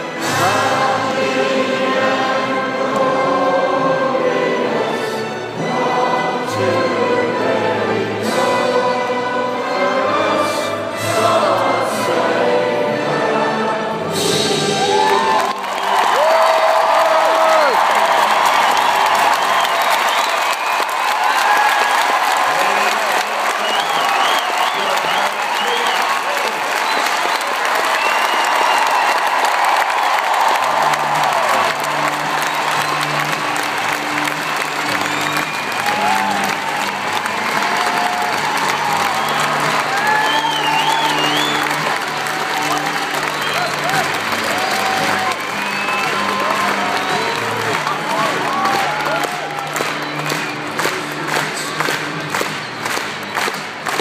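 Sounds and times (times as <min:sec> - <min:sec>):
music over loudspeakers: 0:00.0 - 0:15.4, 0:30.7 - 0:54.0
stadium crowd applauding and cheering: 0:00.0 - 0:54.0
shouts and whistles: 0:14.8 - 0:29.5, 0:34.9 - 0:37.0, 0:37.6 - 0:41.9, 0:42.6 - 0:50.6.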